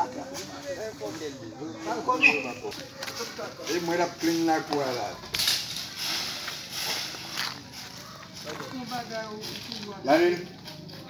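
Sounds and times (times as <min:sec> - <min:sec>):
voices talking: 0:00.0 - 0:11.0
broom sweeping gravel: 0:02.6 - 0:11.0.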